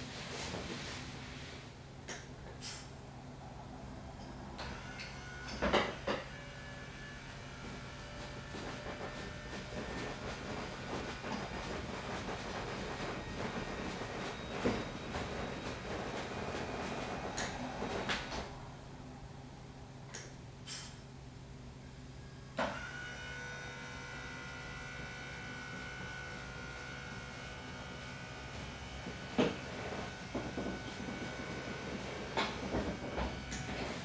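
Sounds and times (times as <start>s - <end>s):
electric bed motor running: 4.6s - 18.5s, 22.2s - 34.0s.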